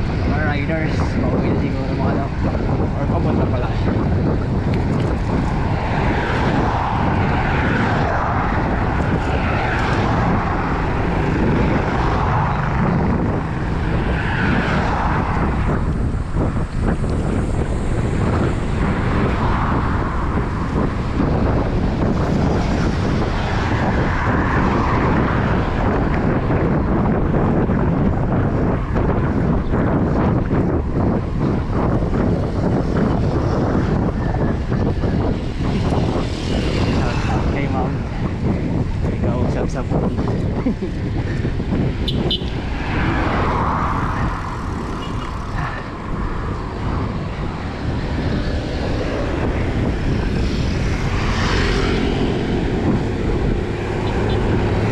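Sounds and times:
wind rushing over microphone: 0.0s - 54.9s.

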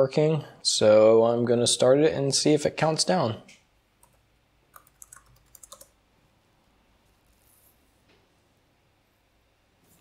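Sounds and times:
computer keyboard clicks: 4.0s - 5.9s.

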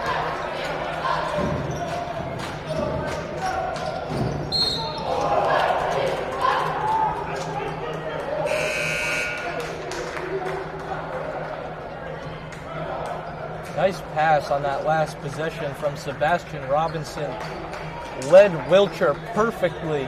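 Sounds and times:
crowd voices: 0.0s - 20.0s
referee's whistle: 4.5s - 5.1s, 8.4s - 9.6s
scorer's table horn: 8.5s - 9.6s.

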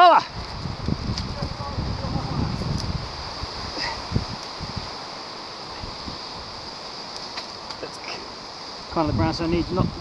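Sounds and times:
wind buffeting microphone: 0.0s - 7.1s, 8.8s - 10.0s
foliage rustling: 0.0s - 10.0s.

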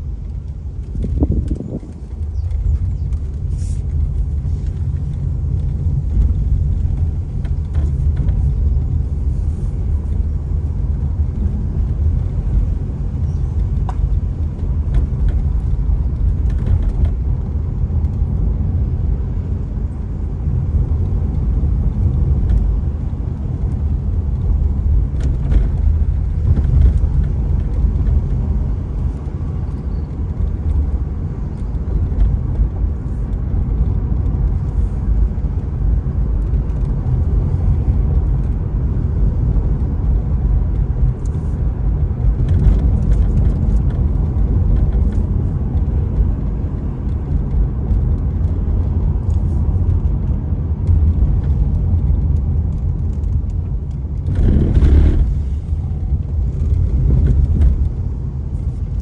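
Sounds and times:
car engine and tyre noise: 0.0s - 59.0s.

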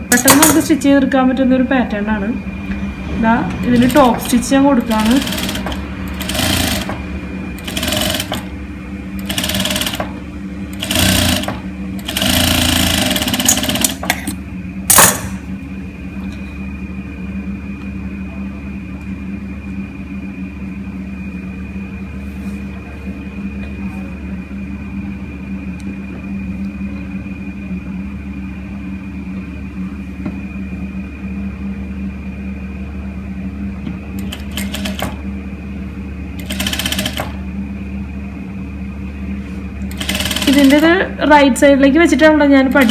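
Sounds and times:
sewing machine humming: 3.6s - 15.4s, 34.2s - 35.2s, 36.4s - 37.4s, 39.9s - 41.2s, 42.5s - 42.9s
sewing machine stitching: 3.7s - 7.0s, 7.6s - 8.5s, 9.2s - 10.1s, 10.7s - 14.0s, 34.2s - 35.2s, 36.4s - 37.4s, 39.9s - 40.9s, 42.7s - 42.9s.

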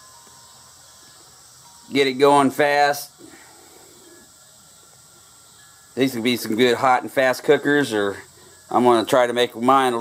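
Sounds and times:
outdoor background noise: 0.0s - 10.0s
man speaking: 1.9s - 3.1s, 6.0s - 10.0s.

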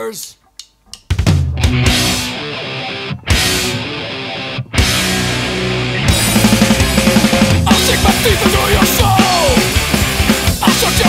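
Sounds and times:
distorted electric guitar riff: 1.2s - 11.0s.

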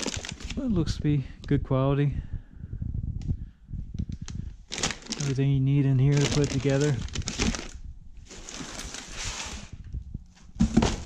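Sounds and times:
plastic wrapping crinkling: 0.0s - 0.7s, 4.7s - 9.8s.

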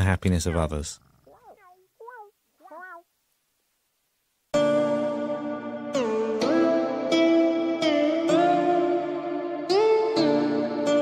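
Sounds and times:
cat meowing: 1.3s - 3.1s.

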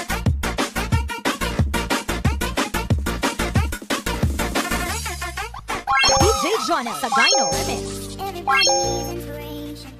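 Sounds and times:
rising chime runs: 5.9s - 8.0s, 8.6s - 9.1s
bell-like ding: 8.6s - 9.1s.

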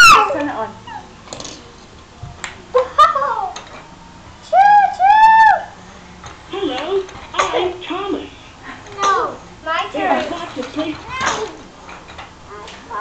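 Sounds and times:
loud falling exclamation: 4.5s - 5.8s.

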